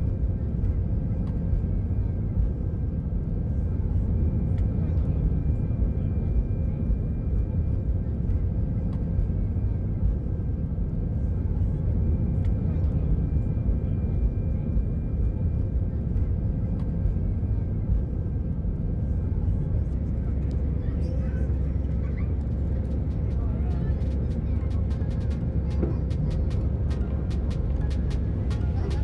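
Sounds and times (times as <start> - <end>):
jet engine and airflow rumble: 0.0 - 29.0.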